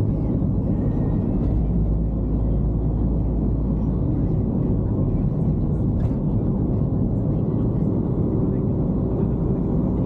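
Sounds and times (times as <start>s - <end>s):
road and engine rumble in vehicle: 0.0s - 10.0s.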